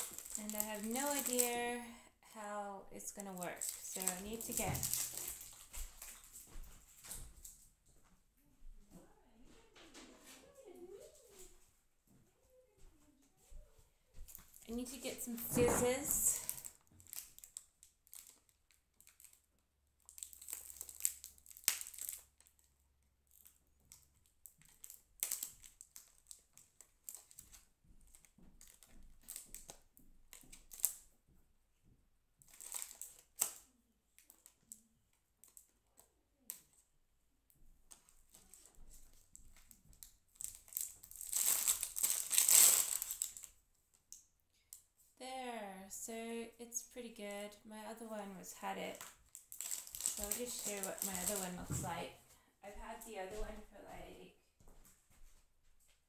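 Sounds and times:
plastic packaging crinkling: 0:00.0 - 0:01.8, 0:03.0 - 0:07.2, 0:14.3 - 0:22.7, 0:23.3 - 0:31.0, 0:32.4 - 0:34.8, 0:37.9 - 0:44.2, 0:48.6 - 0:52.0.

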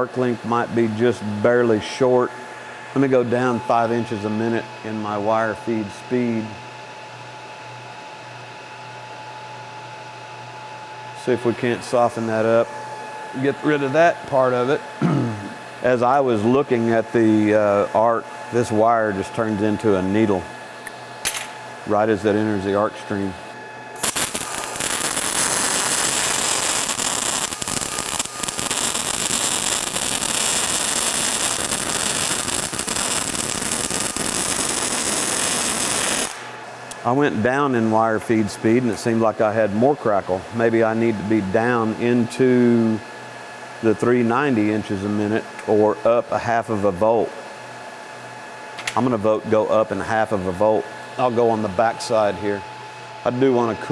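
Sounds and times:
electric fan humming: 0:00.0 - 0:53.9
faint high whine: 0:21.3 - 0:40.2
welding arc hissing and crackling: 0:24.0 - 0:38.2.

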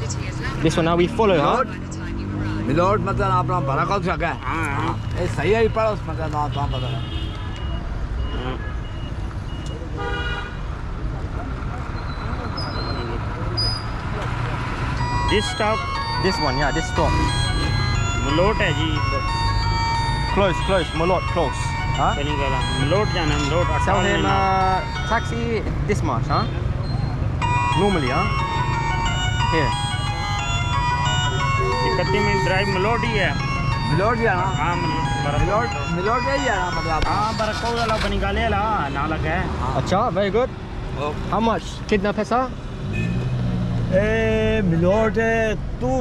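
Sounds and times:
traffic engine rumble: 0:00.0 - 0:46.0
vehicle horn: 0:06.5 - 0:07.8, 0:10.0 - 0:10.6, 0:42.9 - 0:43.5
electronic beeping jingle: 0:14.8 - 0:39.0.

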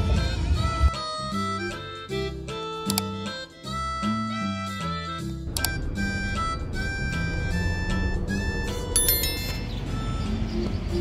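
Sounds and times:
background music: 0:00.0 - 0:11.0
bright bell ding: 0:09.0 - 0:09.8.

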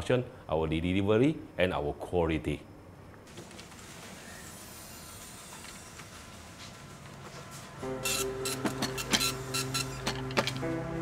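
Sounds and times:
machine hum: 0:02.9 - 0:11.0.

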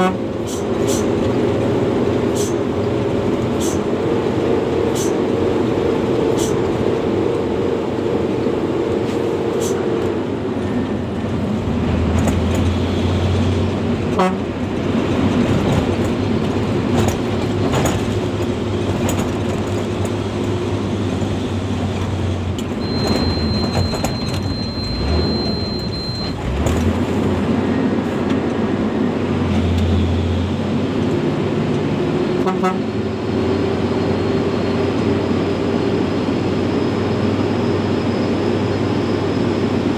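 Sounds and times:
truck diesel engine running: 0:00.0 - 0:39.9.

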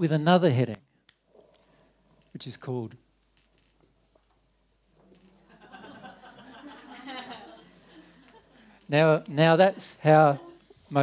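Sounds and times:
marker writing on whiteboard: 0:03.0 - 0:06.1.

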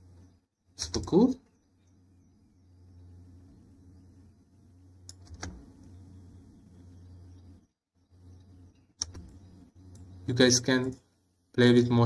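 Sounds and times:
faint low hum: 0:00.0 - 0:12.0
computer mouse clicking: 0:05.0 - 0:05.9, 0:09.0 - 0:10.1.

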